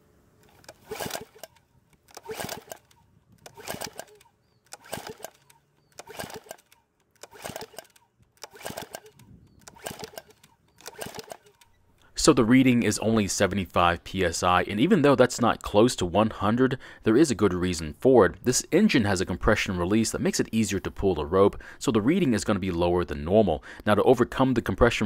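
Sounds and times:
engine pull-starter whirring: 0.4 - 12.1.

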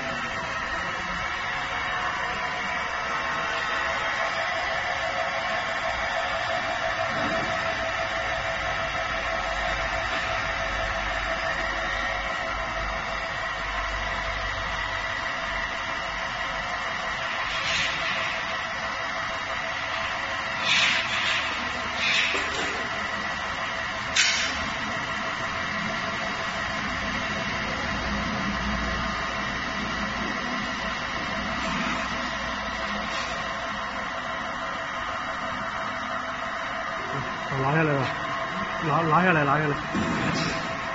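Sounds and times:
industrial washing machine running: 0.0 - 40.9
washing machine hiss: 17.3 - 18.5, 19.9 - 23.0, 24.1 - 24.9, 31.5 - 34.0.

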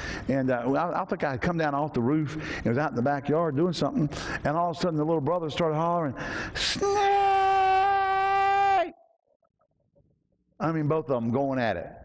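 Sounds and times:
man yelling: 6.7 - 9.0.

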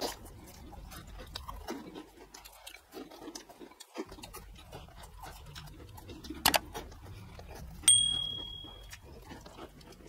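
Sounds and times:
bright bell ding: 7.9 - 8.9.

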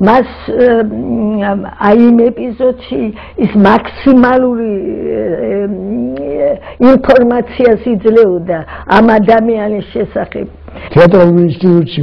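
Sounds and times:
woman speaking: 0.0 - 10.6
woman's drawn-out vocal sound: 4.5 - 6.8.

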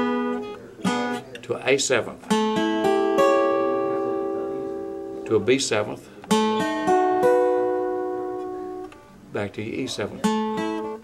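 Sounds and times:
acoustic guitar chord strummed: 0.0 - 11.0.

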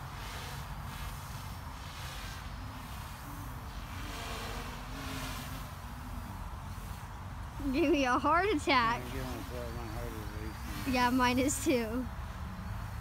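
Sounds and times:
faint steady hum: 0.0 - 13.0
low rumble with hiss: 0.0 - 13.0.

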